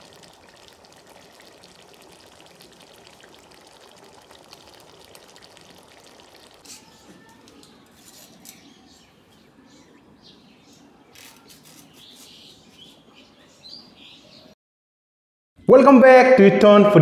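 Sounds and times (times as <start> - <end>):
soda fizzing in a glass: 0.0 - 7.7.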